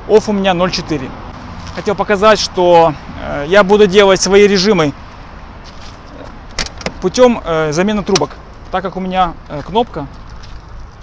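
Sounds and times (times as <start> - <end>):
car door handle latch clicks: 6.5 - 7.0.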